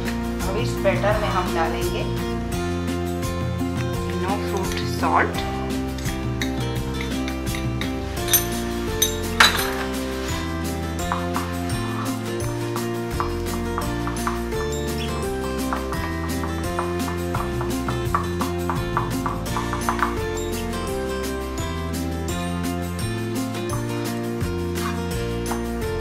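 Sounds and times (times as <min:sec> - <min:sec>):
background music with held notes: 0:00.0 - 0:26.0
steel spoon clinking bowl: 0:06.0 - 0:12.2.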